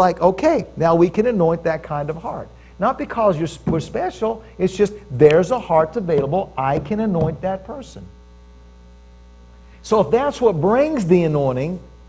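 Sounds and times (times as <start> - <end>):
man talking: 0.0 - 8.1, 9.8 - 11.9
electrical mains hum: 0.0 - 12.0.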